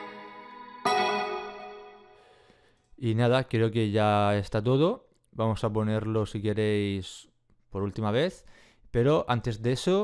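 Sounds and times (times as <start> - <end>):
synth chord with bell-like tone: 0.0 - 2.2.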